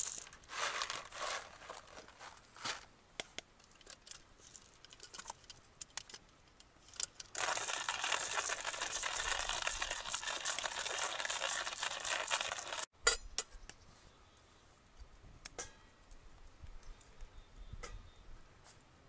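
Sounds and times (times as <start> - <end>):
clicks and clinks of small gear: 3.6 - 12.9.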